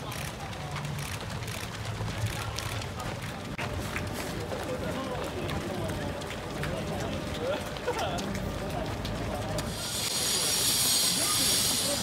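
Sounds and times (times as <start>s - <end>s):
crowd of runners' footsteps: 0.0s - 12.0s.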